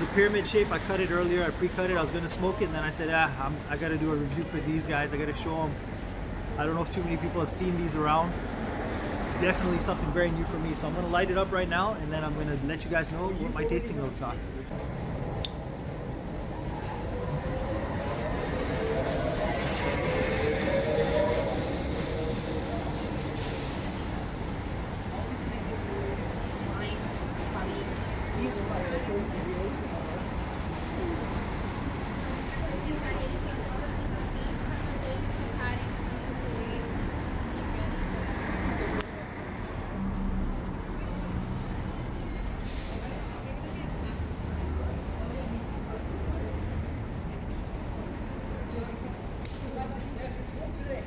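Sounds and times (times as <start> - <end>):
bus passing: 0.0 - 51.0
low traffic rumble: 0.0 - 51.0.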